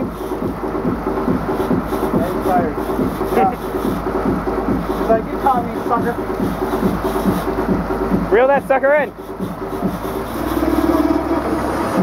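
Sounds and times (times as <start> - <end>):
boat engine pulsing rumble: 0.0 - 12.0.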